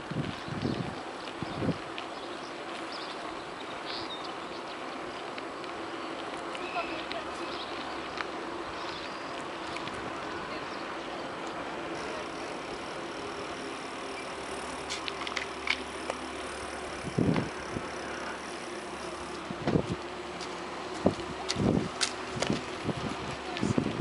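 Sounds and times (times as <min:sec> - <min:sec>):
bicycle riding rushing noise: 0:00.0 - 0:24.0.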